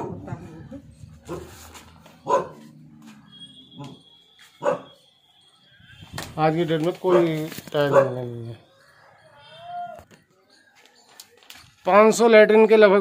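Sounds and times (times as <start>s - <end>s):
dog barking: 0.0s - 0.5s, 1.3s - 1.6s, 2.2s - 2.7s, 4.6s - 5.0s, 7.1s - 8.3s.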